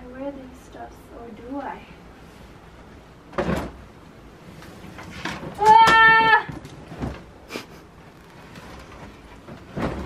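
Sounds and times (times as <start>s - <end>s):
fabric rustling: 3.6s - 10.0s.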